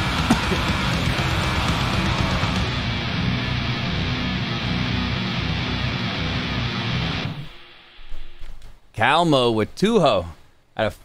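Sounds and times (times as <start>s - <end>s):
distorted electric guitars: 0.0s - 8.5s.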